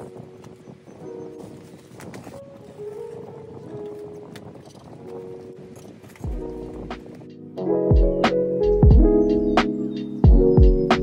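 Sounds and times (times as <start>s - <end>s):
soft background music: 0.0s - 11.0s
plastic crinkling and rustling: 1.4s - 6.4s.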